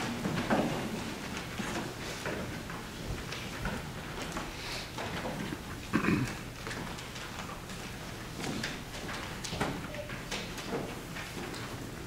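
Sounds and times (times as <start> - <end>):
footsteps in a church: 0.0 - 12.0.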